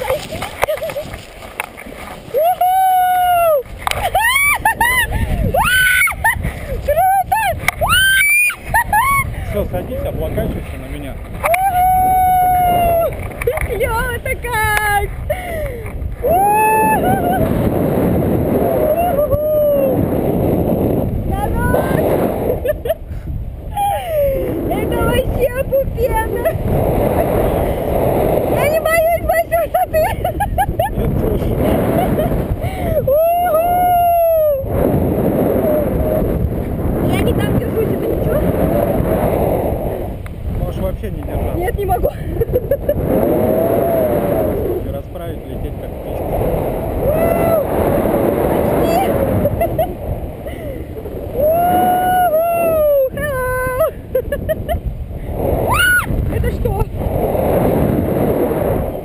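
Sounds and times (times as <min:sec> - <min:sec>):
wind buffeting microphone: 0:00.0 - 0:59.0
woman squealing and exclaiming: 0:02.3 - 0:06.3, 0:06.9 - 0:09.3, 0:11.4 - 0:13.1, 0:16.2 - 0:17.5, 0:18.6 - 0:20.0, 0:32.9 - 0:34.7, 0:47.0 - 0:47.6, 0:48.8 - 0:49.3, 0:51.3 - 0:54.0, 0:55.6 - 0:56.2
person crying out: 0:32.8 - 0:34.7, 0:51.4 - 0:54.0.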